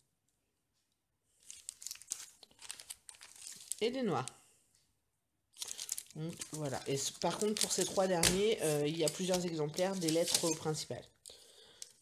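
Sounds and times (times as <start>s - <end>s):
plastic packaging crinkling: 1.4s - 4.3s, 5.6s - 12.0s.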